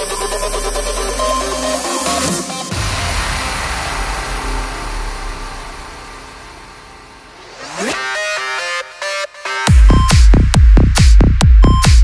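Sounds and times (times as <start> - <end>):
upward-sweeping riser: 2.6 - 9.1
low bass drone: 2.7 - 7.9.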